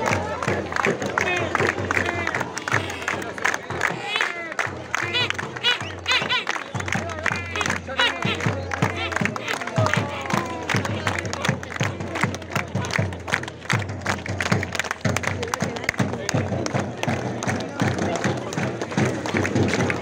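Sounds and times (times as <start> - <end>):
crowd chanting: 0.0 - 12.9
crowd clapping hands: 0.0 - 20.0.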